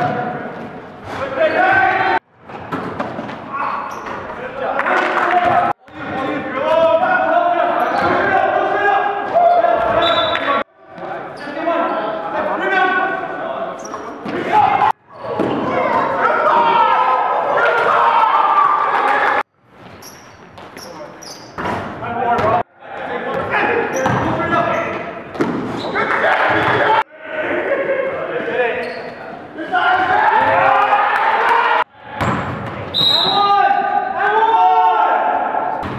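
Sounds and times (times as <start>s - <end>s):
players' voices echoing: 0.0s - 19.5s, 20.4s - 35.9s
indistinct voices echoing: 3.4s - 19.5s.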